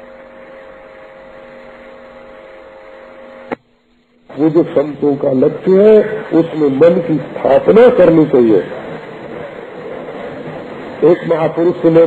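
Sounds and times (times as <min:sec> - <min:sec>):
faint steady tones: 0:00.0 - 0:12.0
recording hiss and hum: 0:00.0 - 0:12.0.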